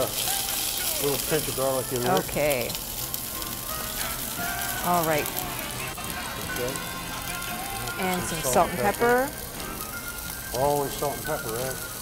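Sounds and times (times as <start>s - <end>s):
prawns sizzling in frying pan: 0.0s - 12.0s
soft background music: 0.0s - 12.0s.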